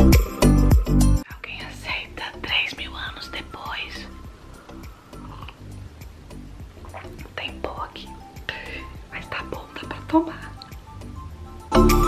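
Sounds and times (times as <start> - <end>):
quiet background music: 0.0 - 12.0
person whispering: 1.3 - 4.2, 5.2 - 5.6, 6.8 - 10.6.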